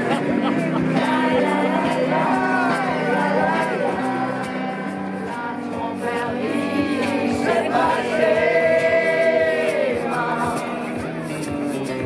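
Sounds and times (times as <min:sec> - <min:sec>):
group singing in unison: 0:00.0 - 0:11.4.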